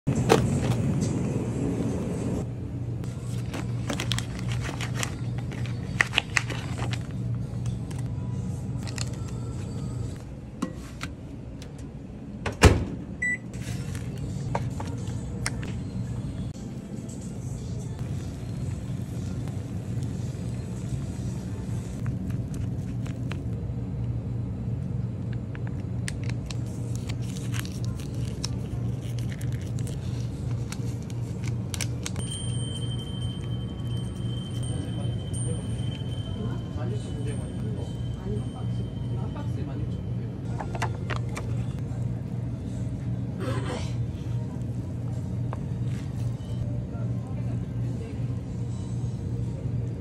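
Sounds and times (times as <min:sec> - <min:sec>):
low rumbling hum: 0:00.0 - 0:50.0
plastic sachet crinkling: 0:03.2 - 0:07.2, 0:08.8 - 0:09.7, 0:22.0 - 0:23.5, 0:26.0 - 0:32.2.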